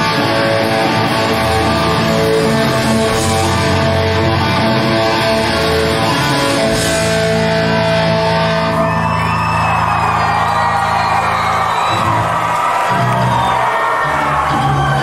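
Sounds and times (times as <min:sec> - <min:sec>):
crowd cheering and whooping: 0:00.0 - 0:03.5, 0:07.6 - 0:15.0.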